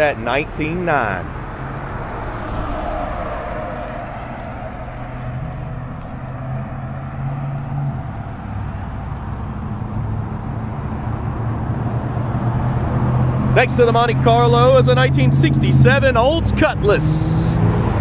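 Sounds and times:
low engine hum: 0:00.0 - 0:18.0
vehicles passing: 0:00.0 - 0:18.0.

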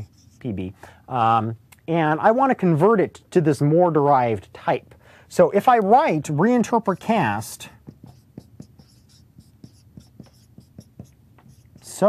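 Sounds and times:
marker writing on a whiteboard: 0:00.0 - 0:00.5, 0:06.4 - 0:12.0.

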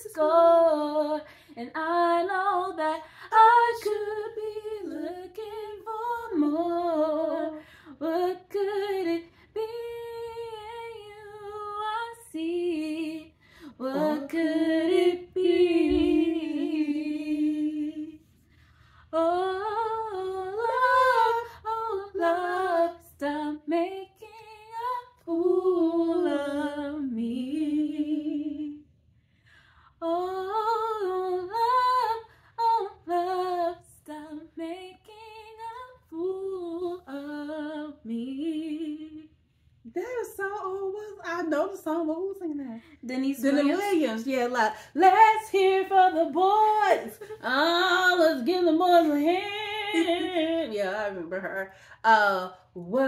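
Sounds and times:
woman singing unaccompanied: 0:00.0 - 0:18.2, 0:19.2 - 0:28.8, 0:30.0 - 0:39.3, 0:39.9 - 0:53.0.

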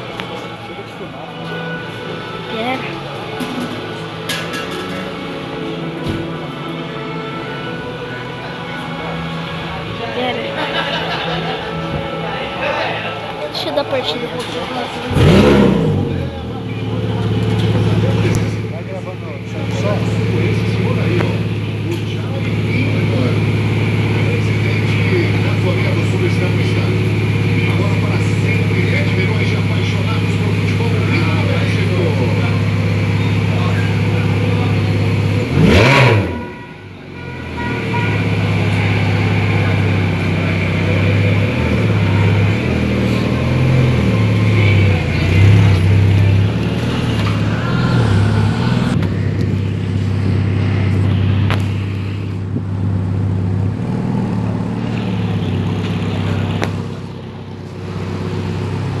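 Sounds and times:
car engine idling and revving: 0:00.0 - 0:59.0.

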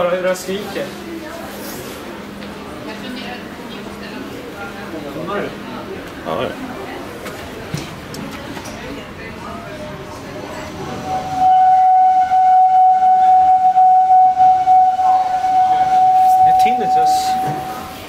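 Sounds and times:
elevator machine whining: 0:09.4 - 0:18.0.

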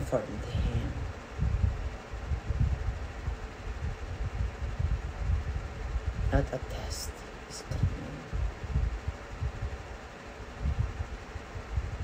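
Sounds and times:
low rumbling on microphone: 0:00.0 - 0:06.9, 0:07.6 - 0:12.0.

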